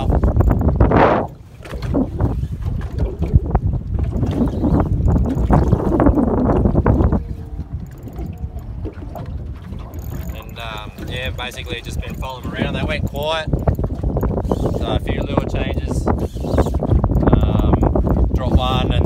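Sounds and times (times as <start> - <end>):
water noise: 0.0 - 19.0
wind buffeting microphone: 0.0 - 19.0.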